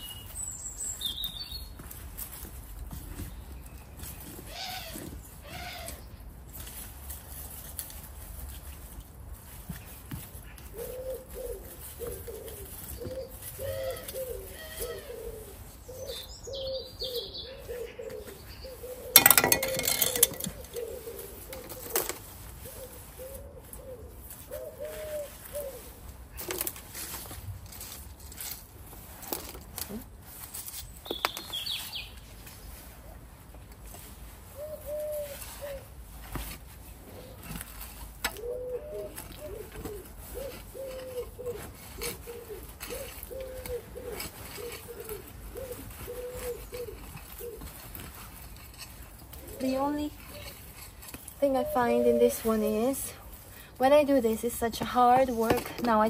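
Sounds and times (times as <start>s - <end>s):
small bird chirping: 0.0s - 1.8s
compost rustling and scraping: 0.0s - 56.0s
pigeon cooing: 10.7s - 26.6s, 34.5s - 35.9s, 37.1s - 48.4s, 51.4s - 53.6s.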